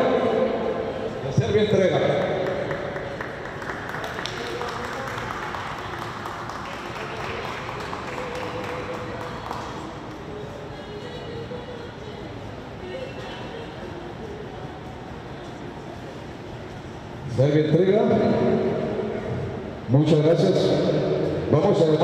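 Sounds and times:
echoing crowd chatter: 0.0 - 22.0
faint music: 0.0 - 22.0.

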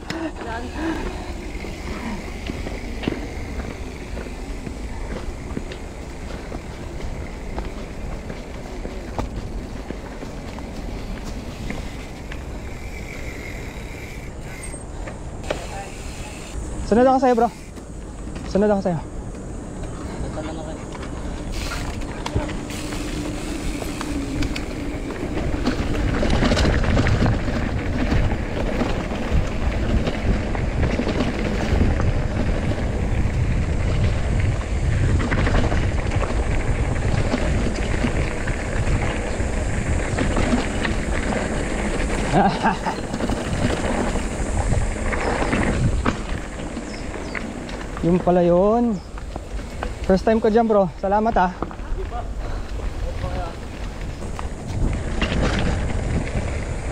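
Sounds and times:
bike tyres rolling over dirt: 0.0 - 56.9
wind on microphone: 19.1 - 48.2, 51.7 - 56.9.

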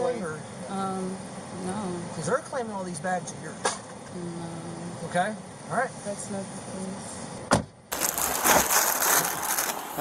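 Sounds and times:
plastic wrapping crinkling: 7.9 - 10.0.

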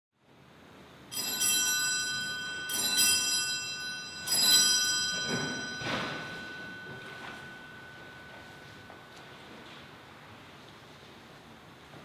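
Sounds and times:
bell ringing: 1.1 - 10.0.

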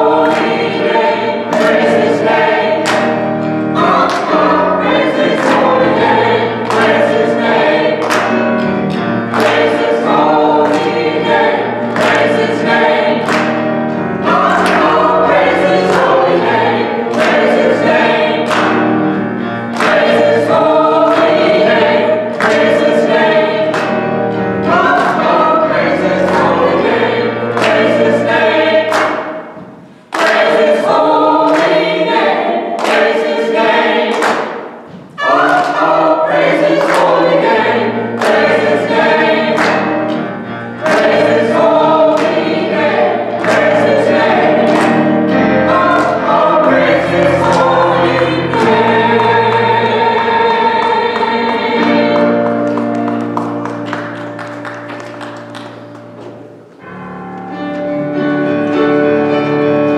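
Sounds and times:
church choir singing: 0.0 - 59.9
instrumental accompaniment: 0.0 - 59.9.

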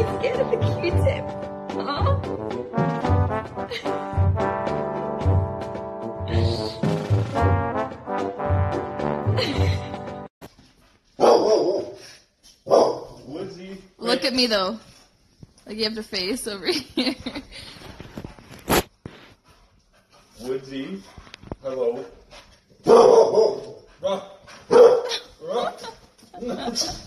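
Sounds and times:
dog barking: 11.2 - 12.0, 12.6 - 13.2, 22.8 - 23.9, 24.7 - 25.3.

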